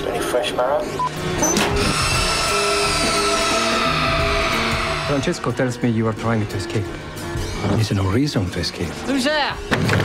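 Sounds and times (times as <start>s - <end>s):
soundtrack music with low notes: 0.0s - 10.0s.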